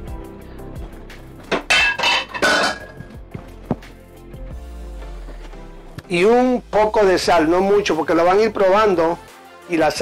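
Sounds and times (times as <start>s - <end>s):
background music: 0.0s - 10.0s
kitchenware clattering: 1.5s - 3.1s.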